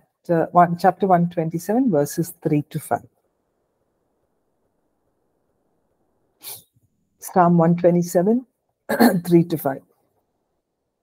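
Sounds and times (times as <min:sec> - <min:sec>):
person sniffing sharply: 0:06.4 - 0:06.7.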